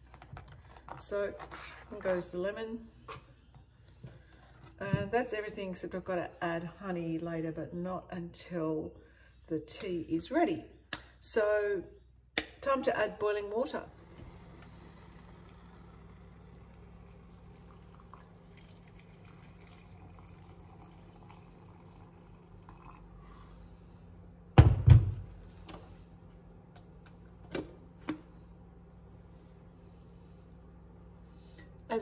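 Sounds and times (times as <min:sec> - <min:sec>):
water pouring into glass: 0:16.8 - 0:23.1.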